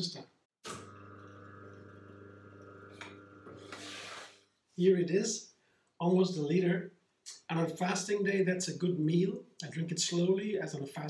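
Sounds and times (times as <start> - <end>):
electric juicer motor humming: 0.6 - 3.8.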